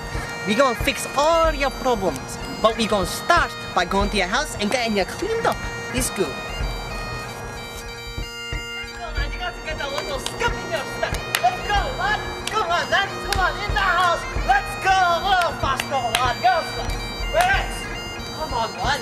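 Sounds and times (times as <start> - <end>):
bagpipe music: 0.0 - 19.0.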